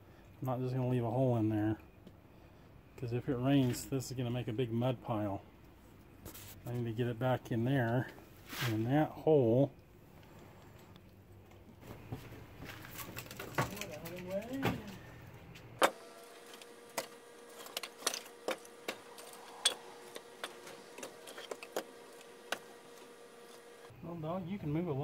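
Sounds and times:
faint steady hum: 0.0s - 25.0s.

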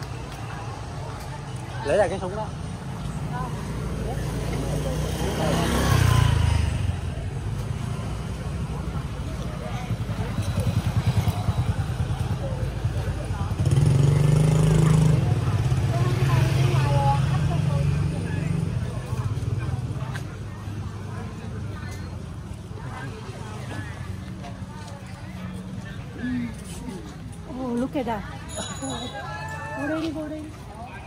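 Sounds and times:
faint background voices: 0.0s - 31.0s
motorbike engines rumbling: 0.0s - 31.0s.

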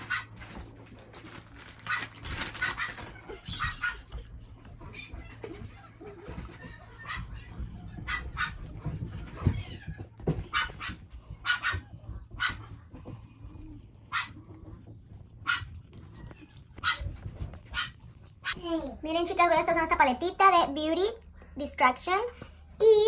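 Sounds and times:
dog barking: 7.0s - 8.7s, 10.5s - 12.7s, 14.1s - 14.4s, 15.4s - 15.8s, 16.8s - 17.1s, 17.7s - 18.6s.

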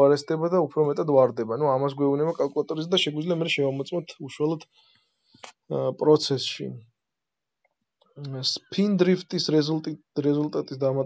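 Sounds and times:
man speaking: 0.0s - 4.7s, 5.4s - 7.0s, 8.2s - 11.0s.

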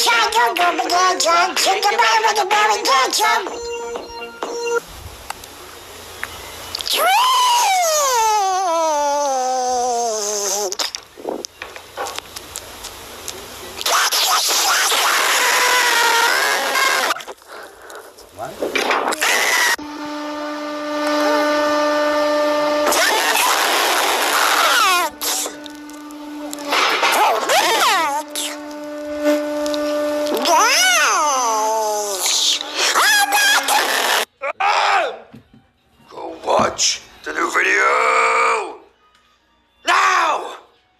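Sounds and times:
voices: 0.0s - 4.1s, 29.7s - 35.2s
music: 0.1s - 4.9s, 32.2s - 40.9s
steady held tone: 19.0s - 34.3s.

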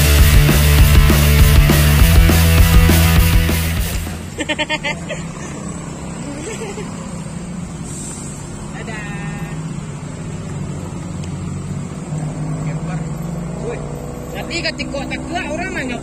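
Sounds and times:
traffic engines droning: 0.0s - 16.0s.

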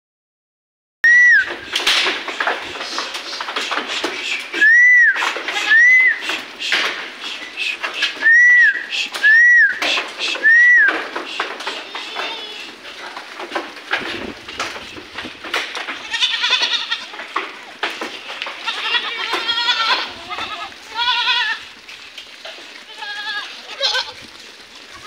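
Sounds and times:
person whistling loudly: 1.0s - 1.5s, 4.6s - 6.2s, 8.2s - 9.8s, 10.4s - 11.0s
goats scuffing on stony ground: 1.5s - 25.0s.

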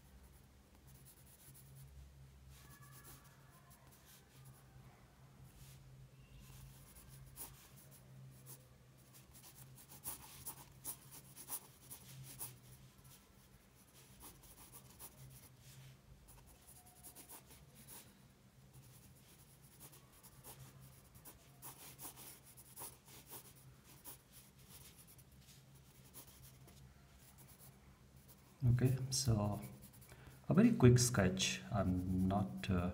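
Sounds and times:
pencil scratching on paper: 6.4s - 13.2s, 13.8s - 18.0s, 18.7s - 28.4s, 29.6s - 30.1s.

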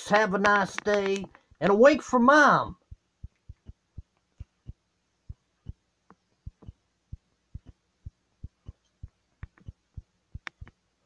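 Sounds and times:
soft clicks: 0.4s - 1.6s, 8.6s - 10.8s
low thumps: 2.7s - 5.8s, 6.4s - 10.7s.

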